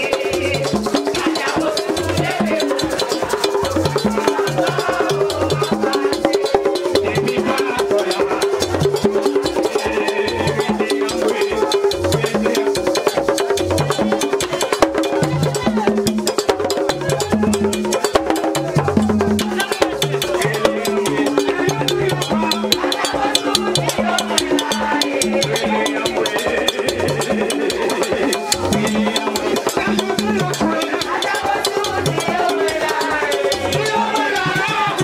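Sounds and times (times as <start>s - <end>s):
fast hand and stick drumming: 0.0s - 35.0s
people singing: 0.0s - 35.0s.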